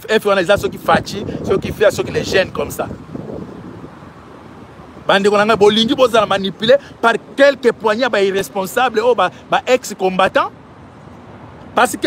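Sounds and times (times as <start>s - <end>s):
wind on microphone: 0.1s - 7.4s.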